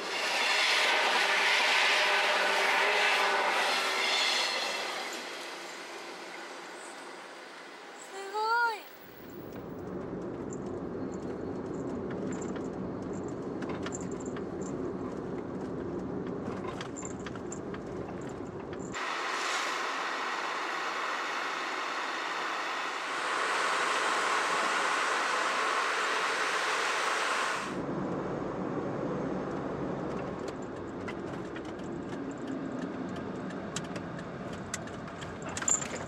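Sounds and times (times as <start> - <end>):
van engine and road rumble: 8.4 - 19.1, 27.7 - 36.0
steady high hiss: 19.0 - 27.8.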